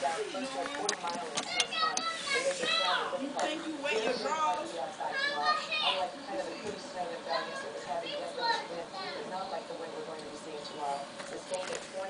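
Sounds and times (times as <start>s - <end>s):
young child talking: 1.4s - 4.4s, 5.0s - 6.2s, 7.3s - 9.3s.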